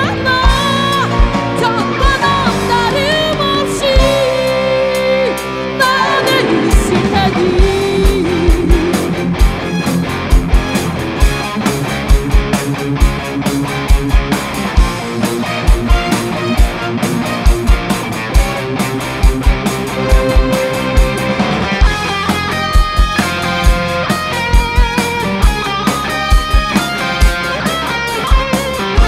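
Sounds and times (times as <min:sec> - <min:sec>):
electric guitar lead: 0:00.0 - 0:29.0
live rock band instrumental: 0:00.0 - 0:29.0.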